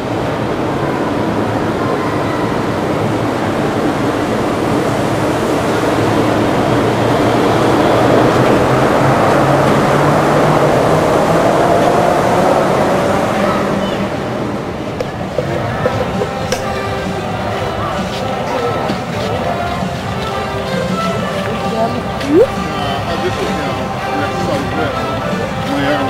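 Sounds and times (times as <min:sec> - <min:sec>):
monorail train passing overhead: 0:00.0 - 0:26.0.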